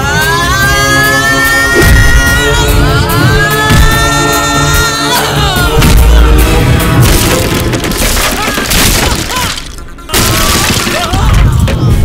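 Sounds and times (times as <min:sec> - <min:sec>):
background film score: 0:00.0 - 0:12.0
wood cracking and splintering: 0:06.8 - 0:12.0.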